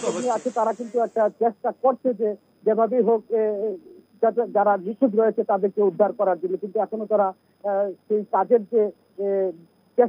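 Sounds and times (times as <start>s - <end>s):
person speaking: 0.0s - 1.4s
steady hiss: 0.0s - 10.0s.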